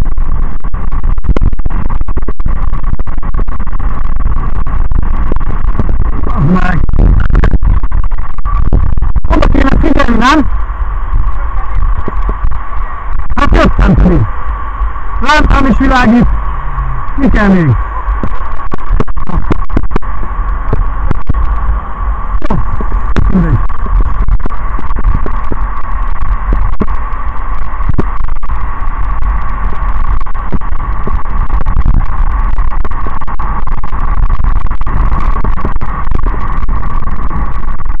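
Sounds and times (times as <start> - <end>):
steady high whine: 0.0 - 38.0
wind buffeting microphone: 0.0 - 38.0.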